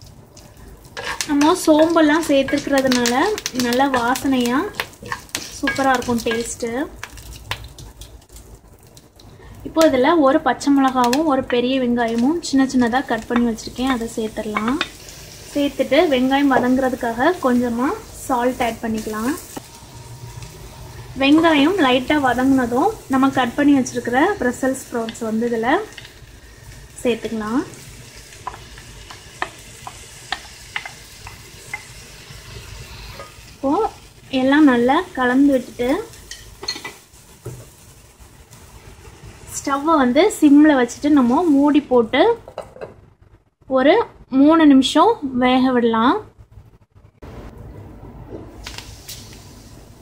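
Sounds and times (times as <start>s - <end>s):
faint sizzle in hot oil: 0.0s - 42.4s, 48.5s - 50.0s
wooden spatula scraping pan: 1.0s - 3.1s.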